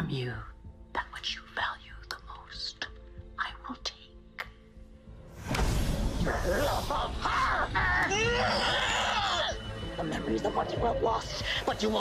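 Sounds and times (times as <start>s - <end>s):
faint low music drone: 0.0s - 12.0s
woman whispering: 0.2s - 4.6s.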